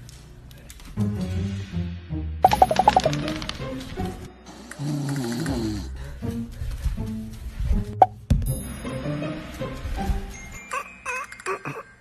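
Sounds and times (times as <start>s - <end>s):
background music: 0.8s - 12.0s
cartoon plop sound effect: 2.5s - 3.1s.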